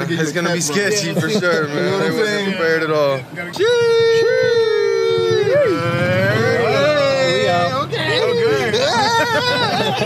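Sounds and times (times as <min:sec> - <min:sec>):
people hollering long calls: 0:00.9 - 0:10.0.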